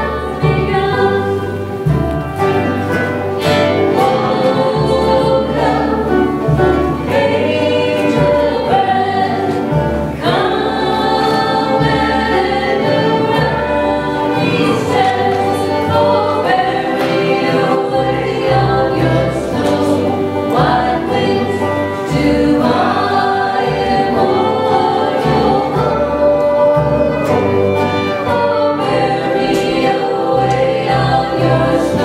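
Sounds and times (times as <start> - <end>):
acoustic guitar: 0.0 - 32.0
banjo: 0.0 - 32.0
fiddle: 0.0 - 32.0
upright bass: 0.0 - 32.0
voices singing together: 0.0 - 32.0.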